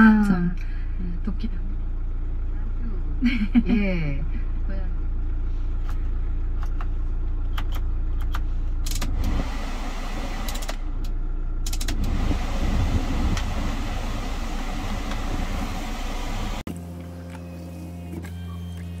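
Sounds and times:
truck engine idling: 0:00.0 - 0:19.0
cabin blower fan rushing: 0:03.2 - 0:19.0
dashboard buttons clicking: 0:07.5 - 0:09.1.

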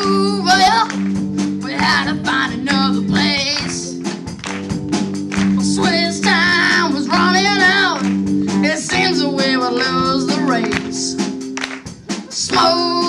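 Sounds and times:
drum kit: 0:00.0 - 0:13.0
electric guitar chords: 0:00.0 - 0:13.0.

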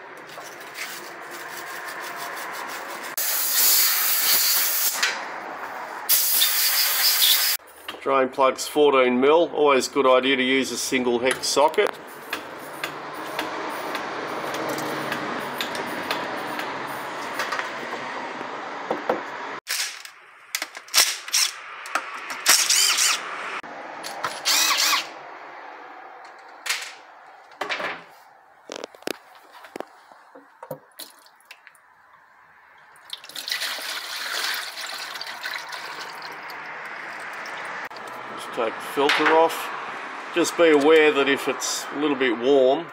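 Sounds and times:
cordless drill spinning bolts: 0:22.4 - 0:23.2, 0:24.3 - 0:25.1
fluid dripping: 0:30.8 - 0:31.9, 0:32.8 - 0:38.2
fluid pouring into a pan: 0:33.0 - 0:36.4.

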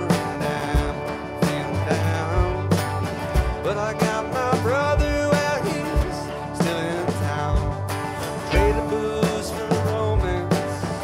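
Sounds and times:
folk rock band playing: 0:00.0 - 0:11.0
high sliding melody line: 0:00.0 - 0:11.0
steady drum beat: 0:00.0 - 0:11.0.

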